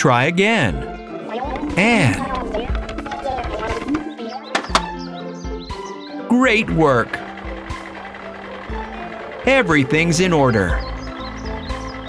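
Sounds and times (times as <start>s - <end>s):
cartoon background music: 0.0s - 12.0s
chirpy cartoon voices: 1.2s - 7.2s.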